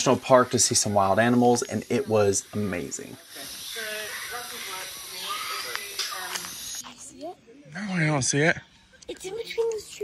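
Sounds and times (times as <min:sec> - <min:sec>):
steady high hiss: 0:00.0 - 0:07.3.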